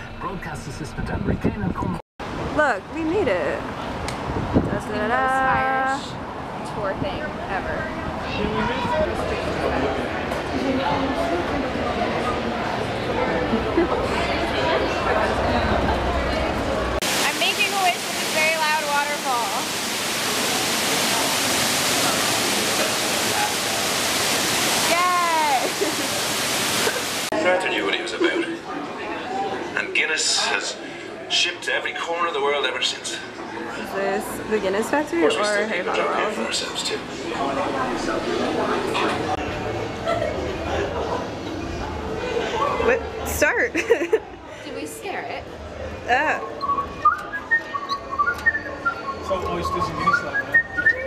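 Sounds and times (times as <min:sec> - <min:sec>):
water pouring into pool: 0:17.0 - 0:27.4
person whistling a tune: 0:46.6 - 0:51.0.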